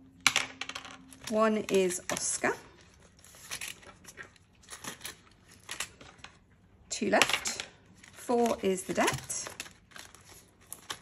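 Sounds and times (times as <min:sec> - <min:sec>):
plastic pouch rustling: 0:07.9 - 0:11.0.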